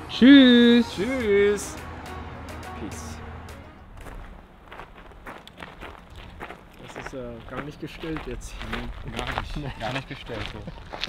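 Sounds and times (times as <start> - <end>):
footsteps on gravel trail: 3.8 - 11.0.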